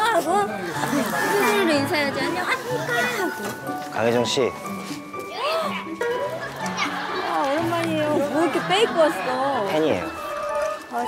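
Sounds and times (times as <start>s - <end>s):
soft background music: 0.0s - 11.0s
voices: 6.3s - 11.0s.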